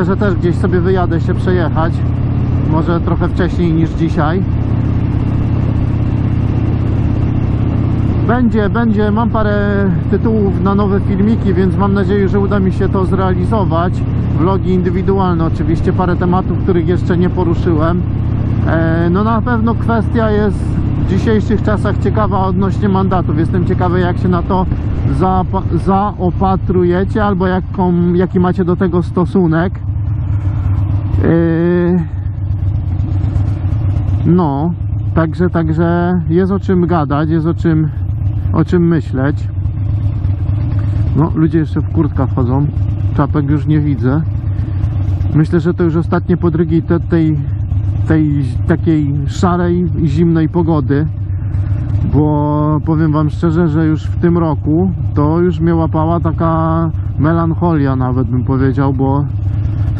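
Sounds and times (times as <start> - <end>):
motorcycle engine running: 0.0 - 59.9.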